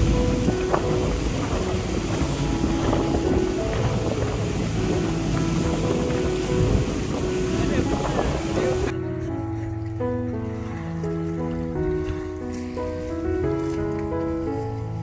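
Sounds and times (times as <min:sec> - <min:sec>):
motorboat engine running: 0:00.0 - 0:08.9
background music: 0:00.0 - 0:15.0
water rushing along hull: 0:00.0 - 0:15.0
wind buffeting microphone: 0:00.0 - 0:15.0.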